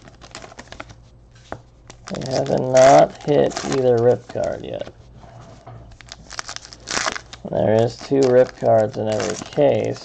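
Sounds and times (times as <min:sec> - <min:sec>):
foil wrapper crinkling and tearing: 0:00.0 - 0:01.0, 0:01.9 - 0:04.9, 0:05.9 - 0:10.0
person speaking: 0:02.1 - 0:05.0, 0:07.4 - 0:10.0.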